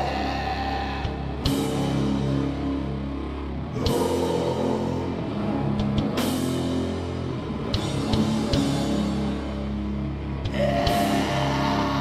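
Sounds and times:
distorted guitar and bass chords: 0.0 - 12.0.

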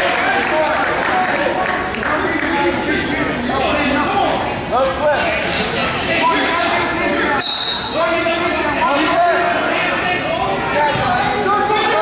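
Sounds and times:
referee's whistle blast: 7.4 - 8.0.

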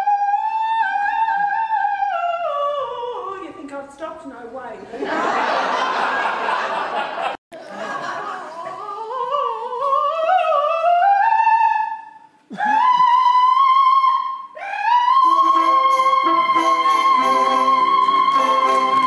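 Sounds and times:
operatic soprano singing: 0.0 - 4.5, 8.2 - 19.0
orchestra playing: 15.2 - 19.0.

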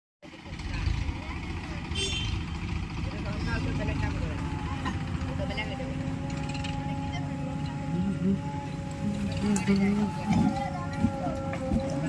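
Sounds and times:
diesel engines rumbling: 0.2 - 12.0.

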